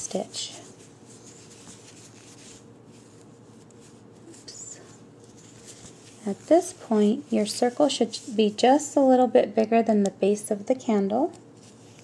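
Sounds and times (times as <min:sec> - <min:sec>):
yarn rubbing on crochet hook: 0:00.0 - 0:09.0
low steady hum: 0:00.0 - 0:12.0.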